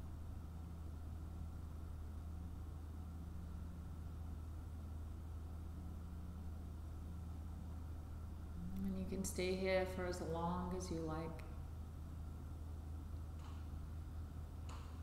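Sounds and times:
low room hum: 0:00.0 - 0:15.0.

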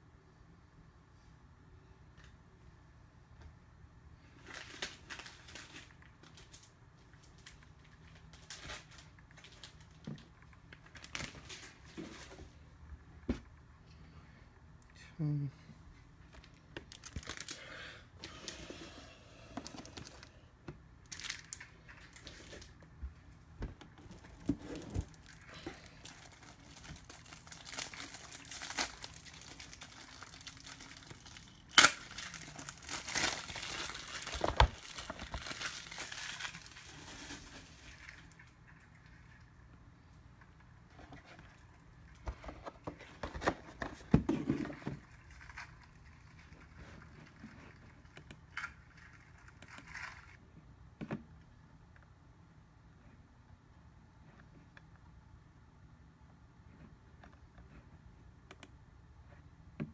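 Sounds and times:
plastic packaging crinkling: 0:04.4 - 0:12.0, 0:16.4 - 0:17.7, 0:21.0 - 0:22.8, 0:24.0 - 0:39.5, 0:44.6 - 0:50.4.

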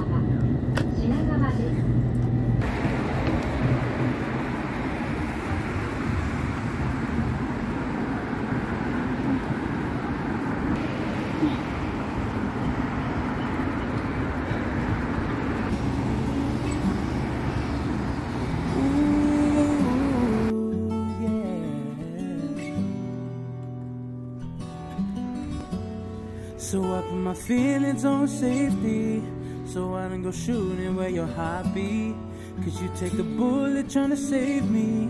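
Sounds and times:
city road traffic: 0:00.0 - 0:21.7
acoustic guitar music: 0:02.6 - 0:35.0.

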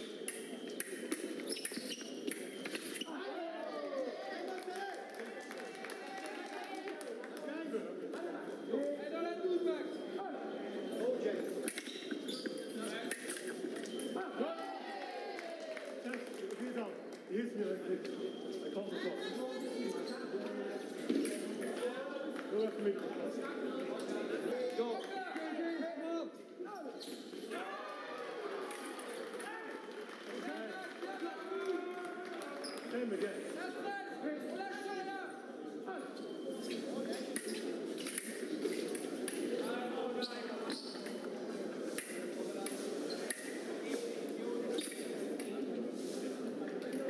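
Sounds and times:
voices echoing in sports hall: 0:00.0 - 0:47.0.

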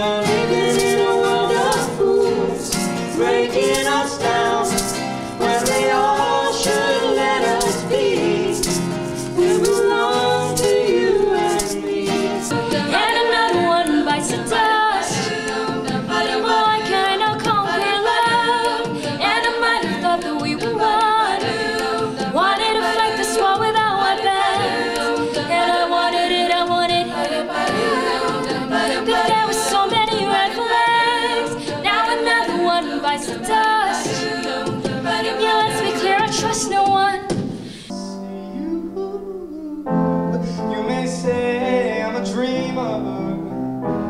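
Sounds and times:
woman singing lead: 0:00.0 - 0:40.1
a cappella group singing in harmony: 0:00.0 - 0:43.4.

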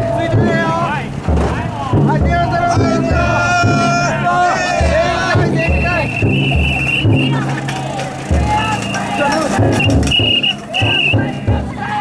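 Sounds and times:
deep taiko drum beats: 0:00.0 - 0:12.0
people shouting and chanting: 0:00.0 - 0:12.0.

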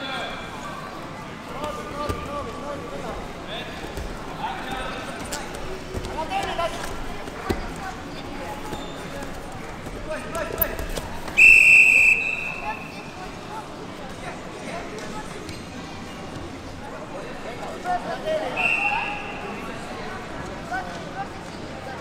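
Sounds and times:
referee's whistle blast: 0:11.4 - 0:12.9, 0:18.6 - 0:19.5.

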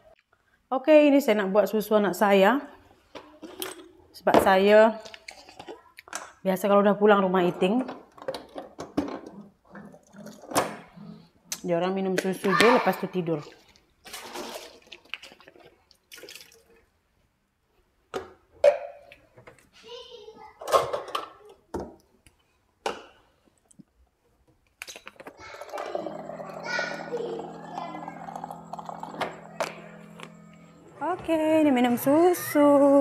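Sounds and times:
water running with low hum: 0:25.3 - 0:32.7.

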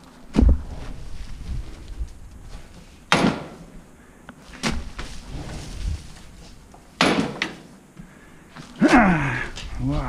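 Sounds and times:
bike rumbling: 0:00.0 - 0:10.0
sharp knocks of bike jolting: 0:07.0 - 0:07.6.

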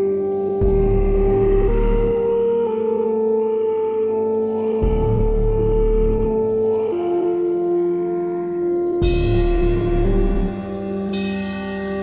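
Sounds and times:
dark ambient synth drone: 0:00.0 - 0:12.0
deep bass: 0:00.6 - 0:02.5, 0:04.8 - 0:06.7, 0:09.0 - 0:10.9.

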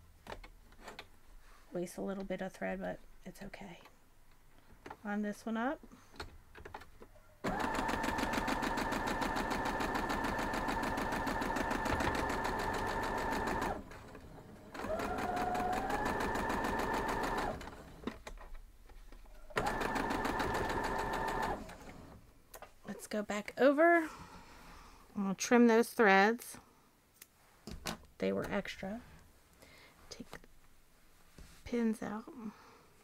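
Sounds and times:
electric sewing machine stitching: 0:07.4 - 0:18.1, 0:19.6 - 0:22.2.

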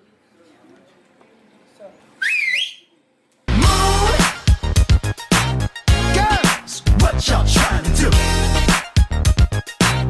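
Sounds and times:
short rising whistle: 0:02.2 - 0:02.9
loud music with heavy bass: 0:03.5 - 0:10.0.

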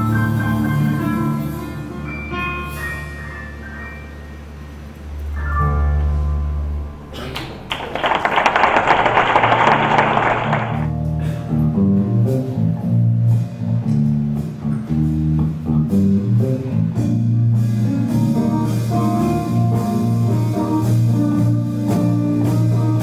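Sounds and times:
audience applause: 0:07.3 - 0:10.9
electric bass plucking: 0:10.8 - 0:23.0.

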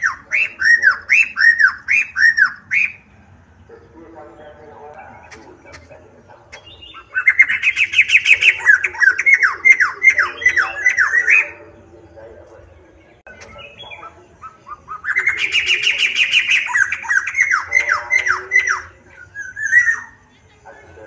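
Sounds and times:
bird singing whistled notes: 0:00.0 - 0:03.1, 0:06.5 - 0:20.7.

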